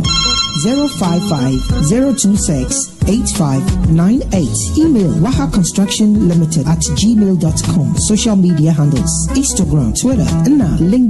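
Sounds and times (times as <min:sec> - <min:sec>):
electronic telephone ringtone: 0:00.0 - 0:03.4
person speaking: 0:00.0 - 0:03.4
background music: 0:00.0 - 0:11.0.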